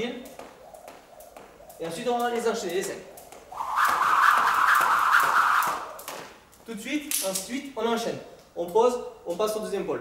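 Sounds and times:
jump rope whirring: 0:00.0 - 0:07.4
rope ticking on concrete: 0:00.0 - 0:07.7.

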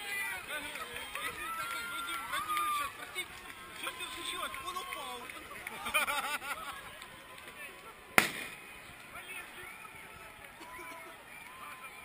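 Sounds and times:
murmur of outdoor crowd: 0:00.0 - 0:12.0
sharp loud bang: 0:08.2 - 0:08.6.

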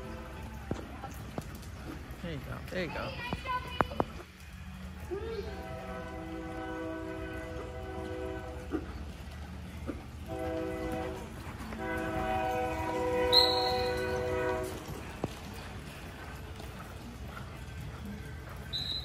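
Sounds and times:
multi-chime train horn: 0:05.4 - 0:08.9, 0:10.2 - 0:15.0.

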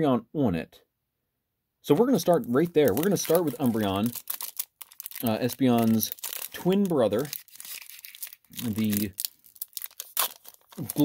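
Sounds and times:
foil wrapper tearing and crinkling: 0:02.0 - 0:11.0.

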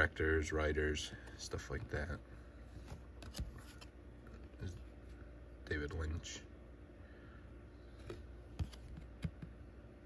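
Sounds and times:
trading cards clicking and rustling: 0:02.8 - 0:04.8.

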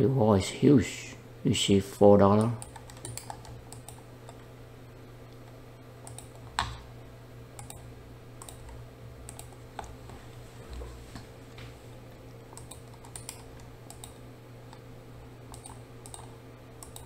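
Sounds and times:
steady low hum: 0:00.0 - 0:17.0
keyboard and mouse clicks: 0:02.4 - 0:04.5, 0:05.3 - 0:06.8, 0:07.6 - 0:10.0, 0:12.5 - 0:14.8, 0:15.5 - 0:17.0.

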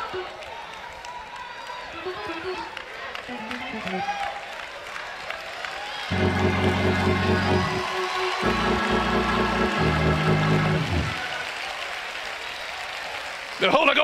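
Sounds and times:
people clapping: 0:00.0 - 0:14.0
loud sustained chords: 0:06.1 - 0:11.3
pulsing note: 0:06.1 - 0:11.3.

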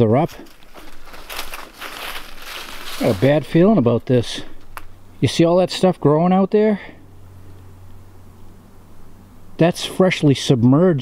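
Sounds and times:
footsteps crunching dry leaves: 0:00.0 - 0:05.0.

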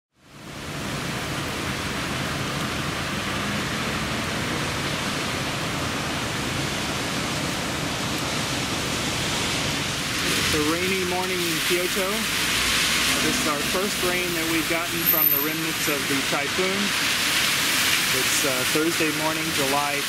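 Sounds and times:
steady rain on street: 0:00.2 - 0:20.0.

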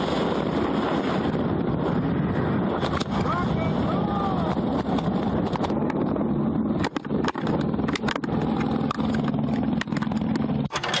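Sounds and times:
wind buffeting microphone: 0:00.0 - 0:10.7.

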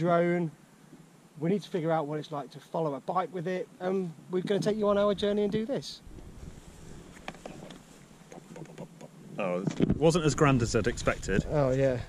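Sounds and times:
wind on microphone: 0:04.4 - 0:07.8, 0:09.2 - 0:12.0.

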